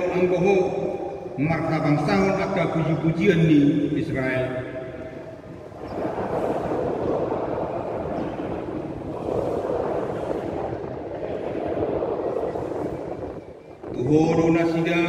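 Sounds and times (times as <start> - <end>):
congregation reading aloud together: 0.0 - 15.0.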